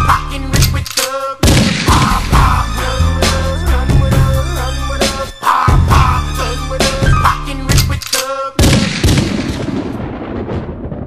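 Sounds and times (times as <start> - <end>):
gunshot-like blast with rumbling tail: 8.6 - 11.0.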